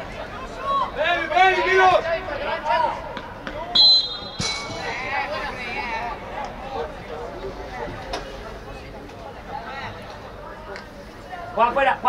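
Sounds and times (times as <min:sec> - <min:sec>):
faint shouting voices: 0:00.0 - 0:12.0
referee's whistle blast: 0:03.7 - 0:04.8.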